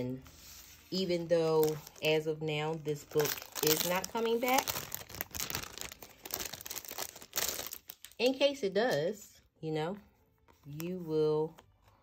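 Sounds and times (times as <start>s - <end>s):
plastic packaging crinkling: 1.4s - 8.2s.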